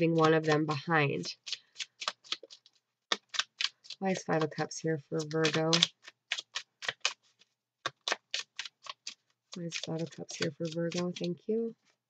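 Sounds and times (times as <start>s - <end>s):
cards being shuffled: 0.1s - 4.6s, 5.2s - 11.4s.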